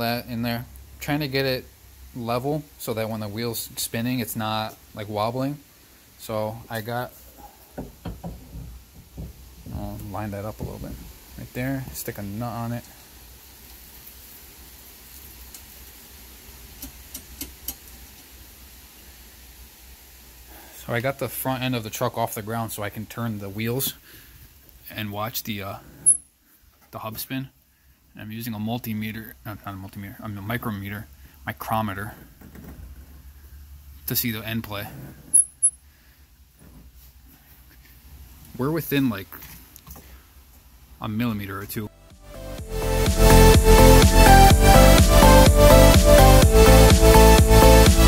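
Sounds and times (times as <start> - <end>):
low hum and hiss: 0.0 - 48.0.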